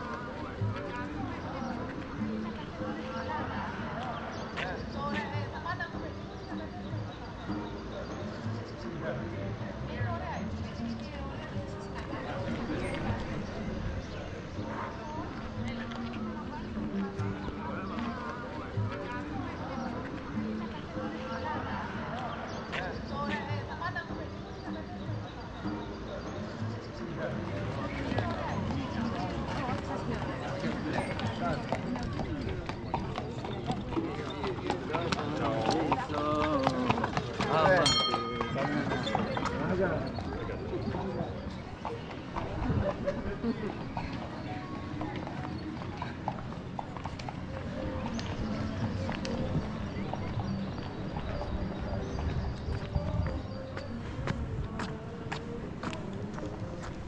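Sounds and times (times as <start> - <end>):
people talking: 0.0 - 46.3, 47.4 - 57.0
indistinct voices of passers-by: 0.0 - 57.0
horse hooves clip-clopping on stone: 27.5 - 57.0.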